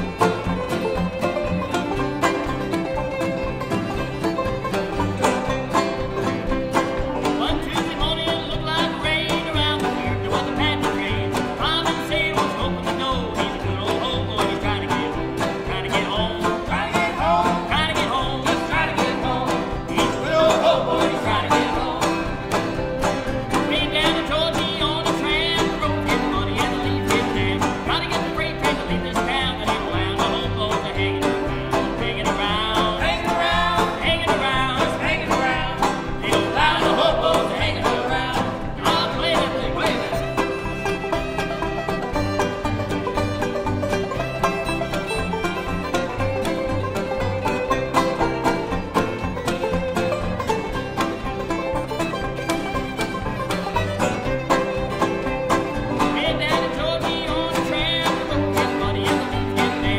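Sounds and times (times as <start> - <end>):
string band playing up-tempo tune: 0.0 - 59.9.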